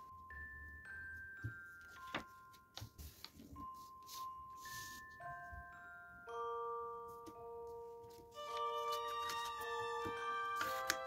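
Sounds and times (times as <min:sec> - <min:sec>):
quiet music with chime-like notes: 0:00.0 - 0:11.0
paper crinkling rustles: 0:01.7 - 0:05.2, 0:08.0 - 0:11.0.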